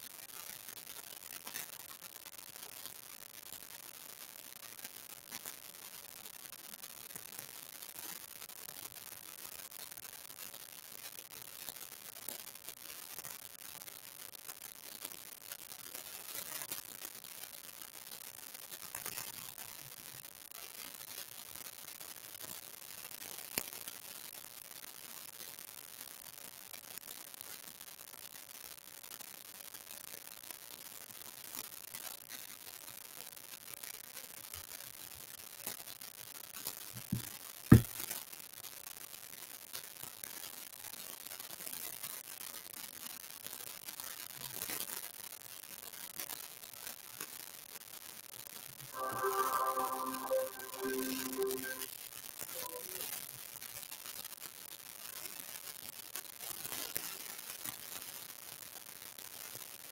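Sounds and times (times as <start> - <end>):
faint steady hiss: 39.1 - 51.9, 52.5 - 59.4.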